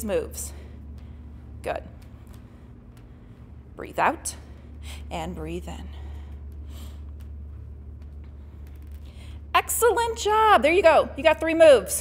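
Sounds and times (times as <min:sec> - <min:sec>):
steady low hum: 0:00.0 - 0:12.0.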